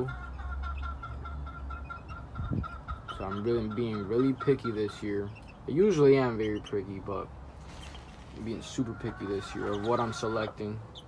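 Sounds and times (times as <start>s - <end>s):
hen clucking: 0.0s - 11.0s.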